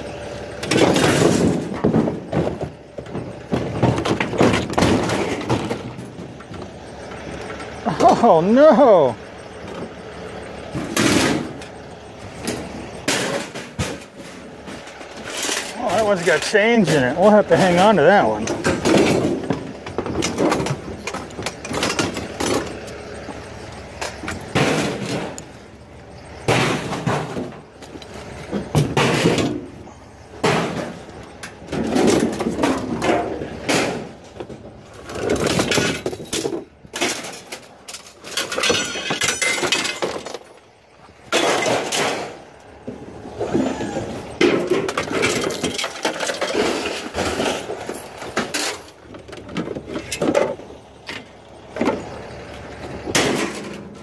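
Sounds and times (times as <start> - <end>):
scrap metal clanging and crashing: 0.0 - 54.0.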